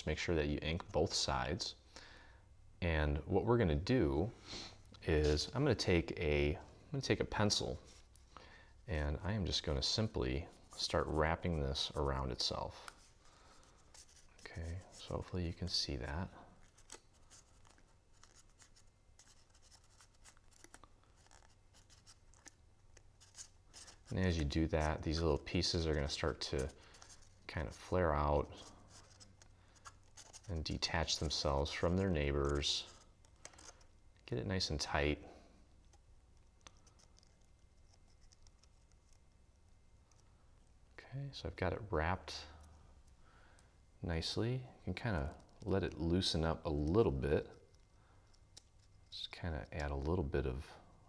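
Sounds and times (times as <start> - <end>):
paper rustling and crinkling: 10.6 - 33.9.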